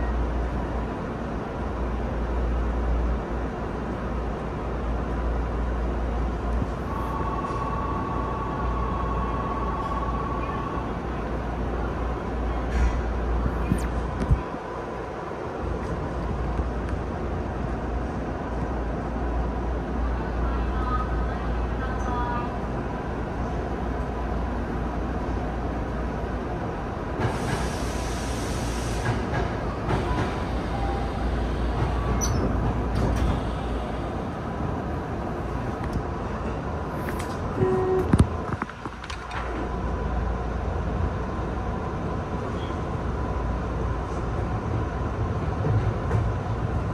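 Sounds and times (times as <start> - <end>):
electric train idling hum: 0.0 - 15.7
train hiss: 27.2 - 32.2.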